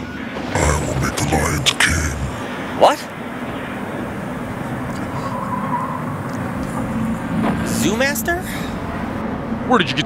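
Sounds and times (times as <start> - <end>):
low hum: 0.6 - 2.7.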